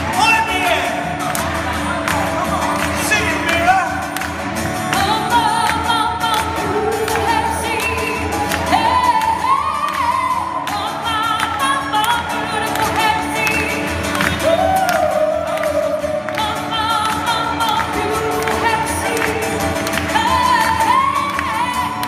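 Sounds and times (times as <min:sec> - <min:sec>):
guitar accompaniment: 0:00.0 - 0:22.0.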